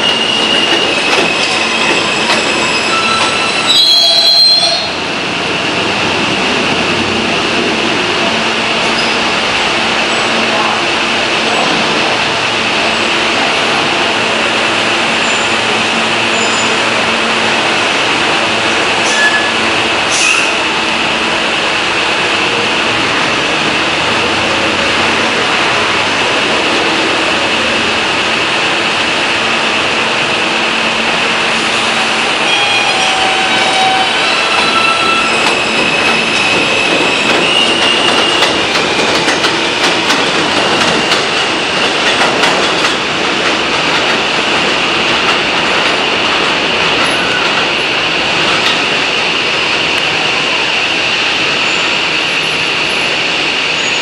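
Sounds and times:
high steady train whine: 0.0s - 54.0s.

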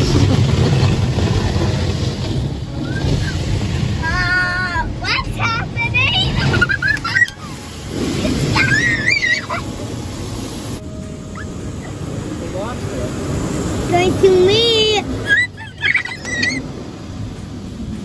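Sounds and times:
car wash water spray and machinery: 0.0s - 18.0s
child squealing: 8.5s - 9.7s, 15.2s - 16.6s.

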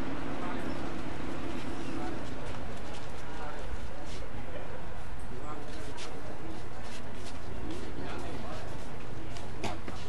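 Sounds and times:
steady noisy background: 0.0s - 10.0s.

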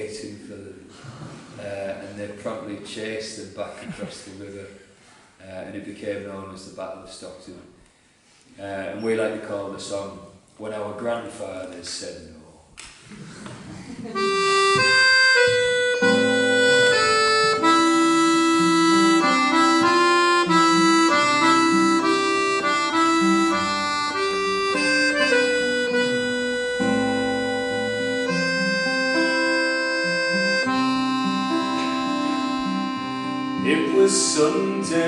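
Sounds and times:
acoustic guitar: 13.9s - 35.0s
accordion melody: 14.1s - 35.0s.

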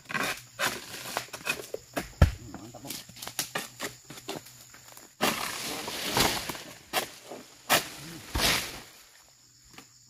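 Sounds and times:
palm fronds rasping and rustling: 2.8s - 9.2s.

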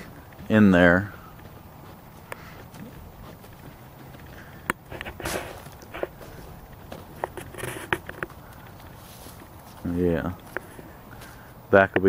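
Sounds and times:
footsteps on gravel: 0.0s - 12.0s.

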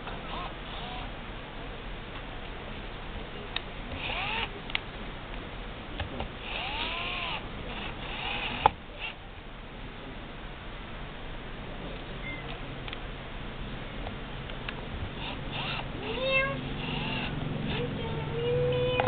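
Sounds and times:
cat meowing: 16.0s - 16.7s.

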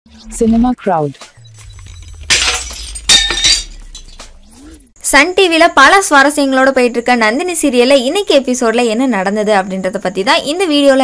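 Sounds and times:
low hum: 1.4s - 5.0s
glass shattering: 1.6s - 4.5s.

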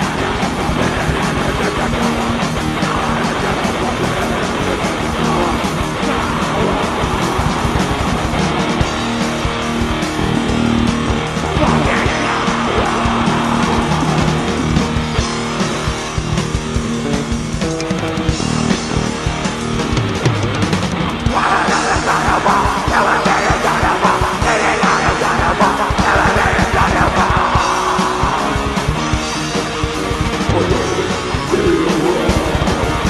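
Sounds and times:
distorted electric guitar: 0.0s - 33.0s
metal band playing: 0.0s - 33.0s
rapid drumming: 0.0s - 33.0s.

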